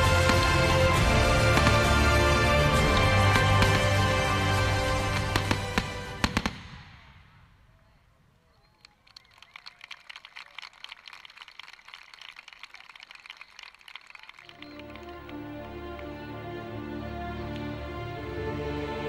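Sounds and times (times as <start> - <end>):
music: 0.0 - 6.6, 14.4 - 19.0
loud firework bangs: 0.0 - 7.7.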